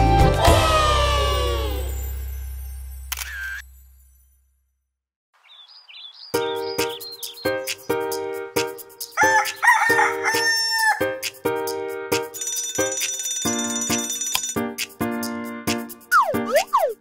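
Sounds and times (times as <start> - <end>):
children's song music: 0.0 - 2.8, 6.2 - 12.9, 13.5 - 17.0
cartoon rooster crowing: 9.2 - 11.2
alarm clock bell ringing: 12.3 - 14.6.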